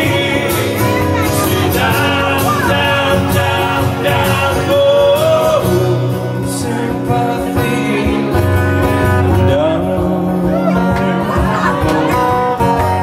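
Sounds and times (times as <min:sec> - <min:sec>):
person singing lead vocal: 0:00.0 - 0:12.6
live pop-rock band playing: 0:00.0 - 0:13.0.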